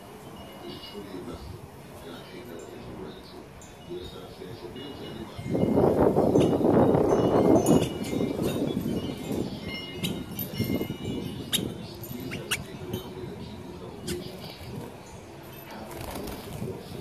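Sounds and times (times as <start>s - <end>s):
wind chimes tinkling: 0.1s - 15.8s.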